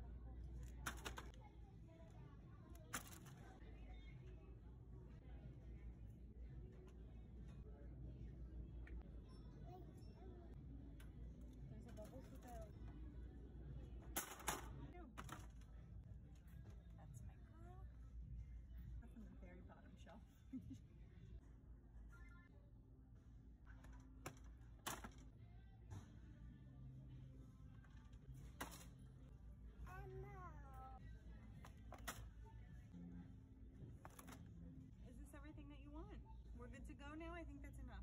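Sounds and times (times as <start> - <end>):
book dropping into plastic cart: 0.8 - 1.3, 24.2 - 25.2.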